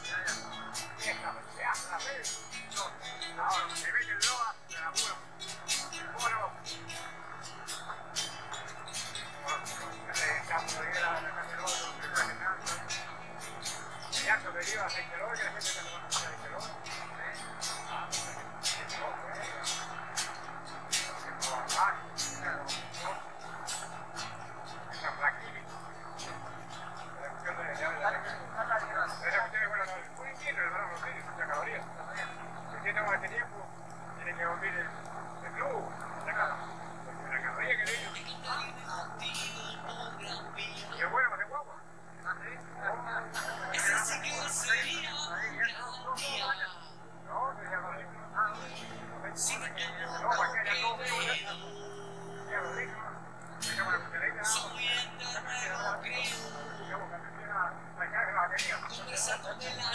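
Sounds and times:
indistinct voices talking: 0.0s - 59.9s
steady low drone: 0.0s - 59.9s.

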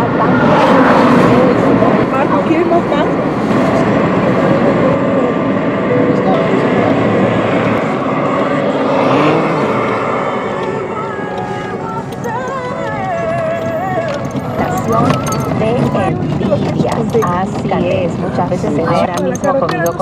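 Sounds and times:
road and engine noise: 0.0s - 20.0s
person talking: 14.8s - 20.0s.

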